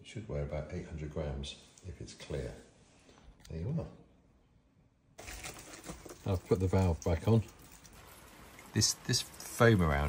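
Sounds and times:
small clicks and rustles: 5.2s - 8.7s
steady hiss: 7.8s - 10.0s.

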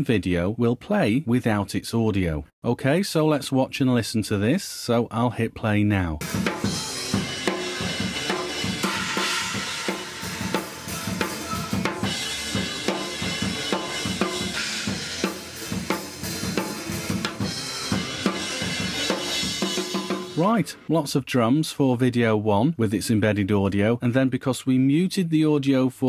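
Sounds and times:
drum kit playing: 6.2s - 20.9s.

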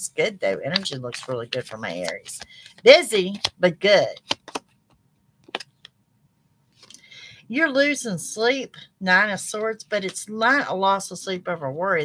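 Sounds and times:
cards clicking on table: 4.2s - 4.7s, 5.4s - 5.8s.

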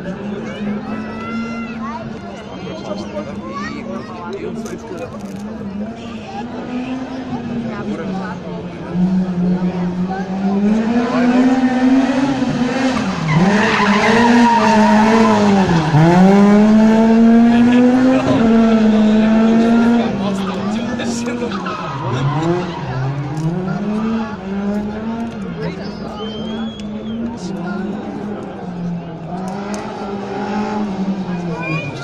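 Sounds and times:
rally car engine revving: 5.4s - 32.0s.

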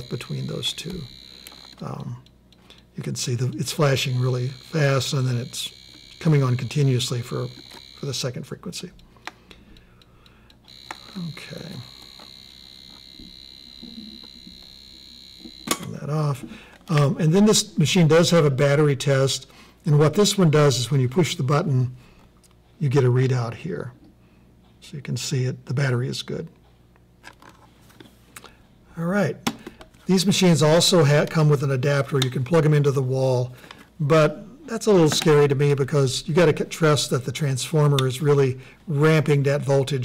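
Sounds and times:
steady high tone: 0.0s - 2.2s, 3.2s - 8.5s, 10.7s - 16.2s
high-pitched electronic ticking: 0.0s - 9.1s, 10.0s - 15.8s.

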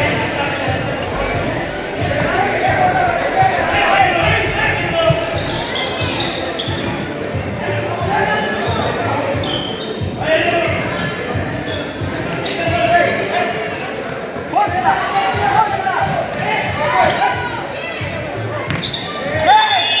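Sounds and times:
voices calling out: 0.0s - 10.6s.

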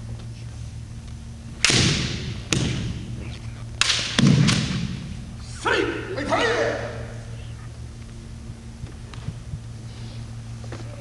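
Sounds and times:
bamboo sword strikes cracking: 1.6s - 3.0s, 3.8s - 5.0s
person shouting: 5.5s - 7.2s.

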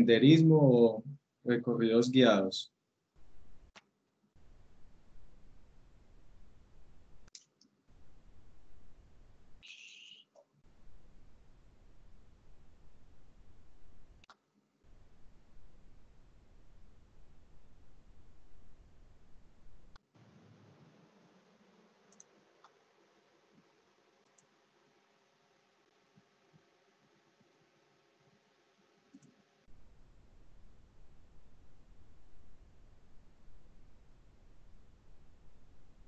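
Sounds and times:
computer mouse clicks: 22.1s - 22.8s, 29.1s - 29.4s.

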